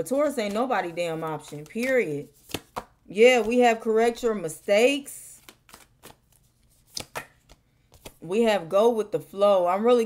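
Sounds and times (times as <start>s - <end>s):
card snaps and flicks: 6.9s - 8.2s.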